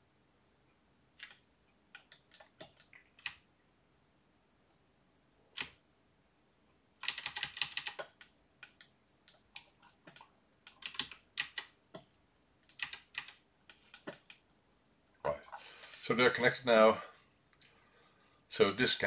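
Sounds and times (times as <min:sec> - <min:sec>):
keyboard and mouse clicking: 0:01.2 - 0:03.4, 0:05.6 - 0:05.8, 0:07.0 - 0:14.5.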